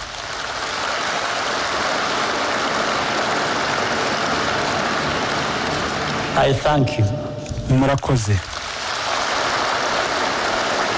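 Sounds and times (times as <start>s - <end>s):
large audience applauding: 0.0s - 6.5s, 7.8s - 10.9s.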